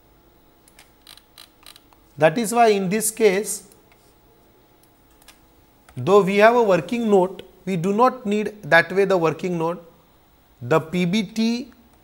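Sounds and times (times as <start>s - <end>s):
keyboard and mouse clicks: 0.7s - 2.0s.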